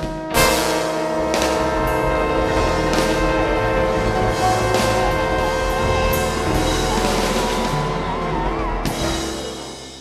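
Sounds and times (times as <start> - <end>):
sharp drum hit: 0.0 - 8.3
piano: 0.0 - 10.0
double bass: 0.1 - 10.0
trombones holding chord: 0.2 - 10.0
guitar: 0.3 - 10.0.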